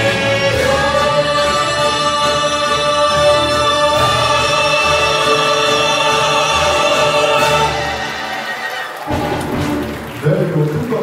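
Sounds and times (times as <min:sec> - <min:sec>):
vocal ensemble singing chord: 0:00.0 - 0:09.0.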